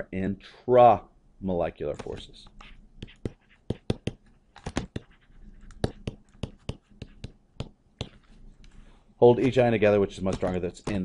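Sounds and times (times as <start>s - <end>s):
stylus tapping on tablet: 2.0s - 8.7s, 10.3s - 11.0s.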